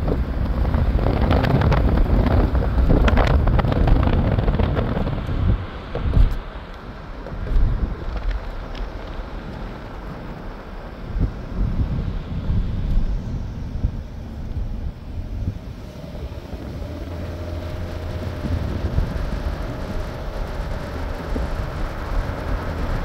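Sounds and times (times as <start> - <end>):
car road noise: 0.0 - 23.0
wind buffeting microphone: 0.0 - 23.0.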